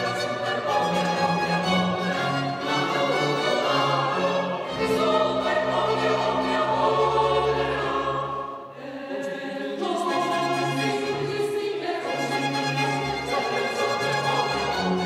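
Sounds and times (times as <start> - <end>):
mixed choir singing: 0.0 - 15.0
strings: 0.0 - 15.0.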